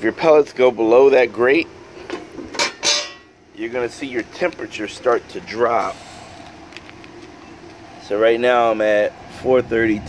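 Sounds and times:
grill fan humming: 0.0 - 10.0.

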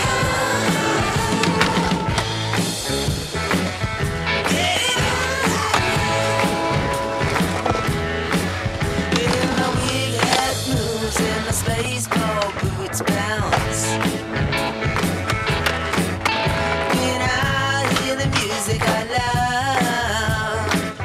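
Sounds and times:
skateboard wheels rolling on concrete: 0.0 - 20.1
rock music: 0.0 - 21.0
skateboard popping and landing: 1.2 - 2.3, 5.5 - 13.9, 14.8 - 16.4.

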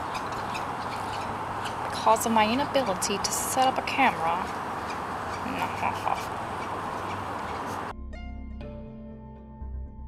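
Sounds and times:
faint irregular ticks: 0.0 - 7.9
outdoor background noise: 0.0 - 7.9.

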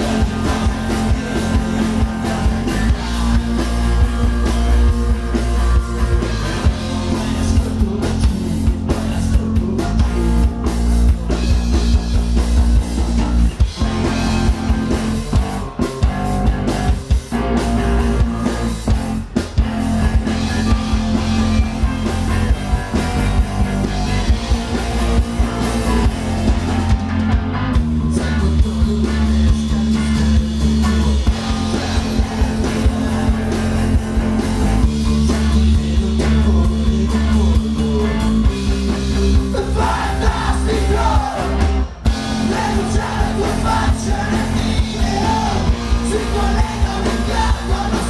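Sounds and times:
bass guitar: 0.0 - 48.0
distorted electric guitars: 0.0 - 48.0
drum kit pounding: 0.0 - 48.0.

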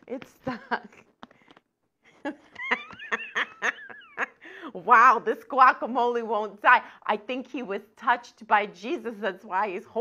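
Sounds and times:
woman laughing: 0.4 - 1.0, 2.2 - 5.0.

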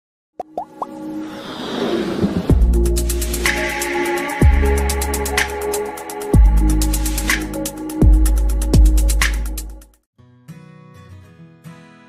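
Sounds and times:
rising electronic plops: 0.4 - 1.0.

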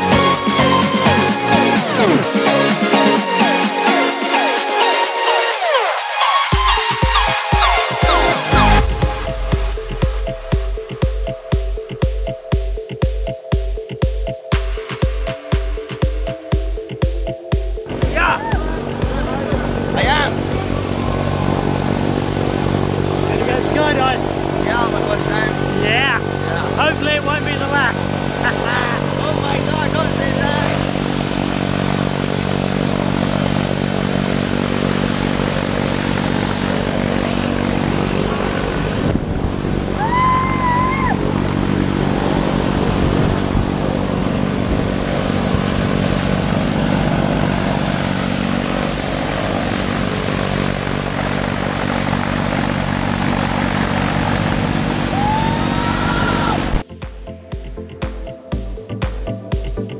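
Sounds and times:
turboprop engine drone and whine: 0.0 - 56.9.

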